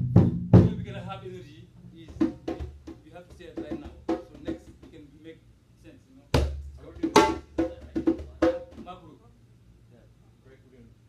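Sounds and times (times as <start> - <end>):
heavy low drum strokes: 0.0 - 5.2, 6.4 - 9.1.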